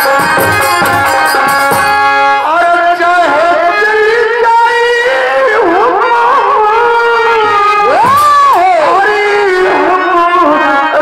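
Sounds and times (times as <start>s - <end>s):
folk music with wavering melody: 0.0s - 11.0s.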